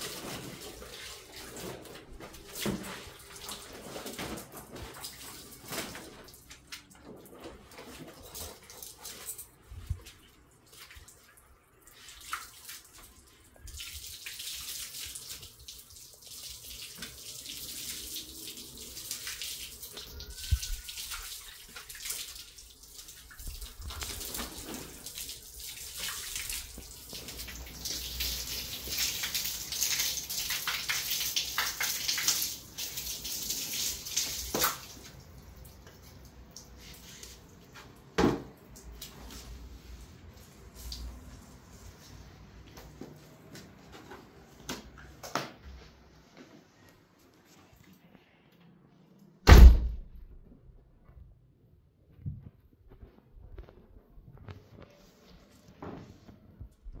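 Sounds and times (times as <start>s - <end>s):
hose water on tiled floor: 0.0s - 49.2s.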